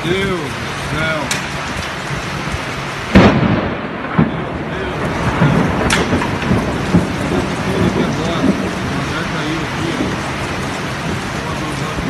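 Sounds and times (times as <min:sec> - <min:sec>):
heavy rain and wind: 0:00.0 - 0:12.0
loud bang: 0:03.1 - 0:08.6.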